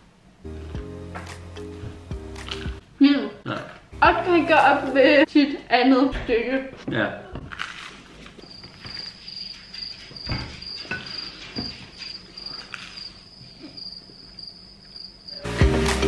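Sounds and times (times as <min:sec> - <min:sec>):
cricket chirping: 0:08.3 - 0:15.5
loud music: 0:15.4 - 0:16.0.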